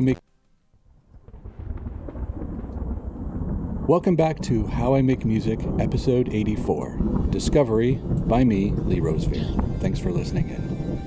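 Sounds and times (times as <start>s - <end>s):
thunder rumble: 0.9s - 11.0s.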